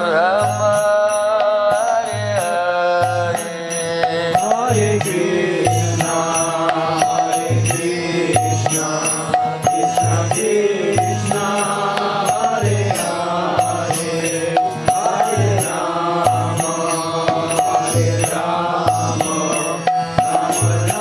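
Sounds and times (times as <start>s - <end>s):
man chanting a sung melody: 0.0s - 21.0s
sharp percussion strikes: 0.0s - 21.0s.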